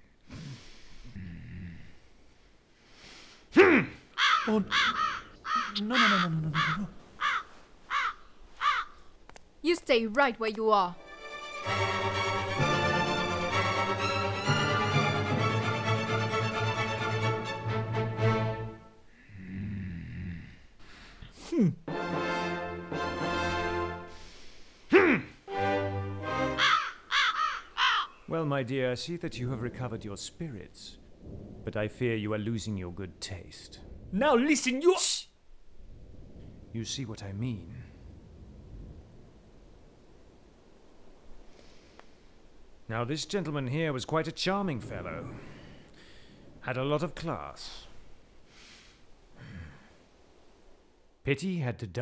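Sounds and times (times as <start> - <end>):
crow cawing: 4.2 - 9.1, 26.5 - 28.3
held music notes: 11.0 - 19.0, 21.9 - 24.2, 25.4 - 26.7
loud harsh cries: 26.5 - 28.1.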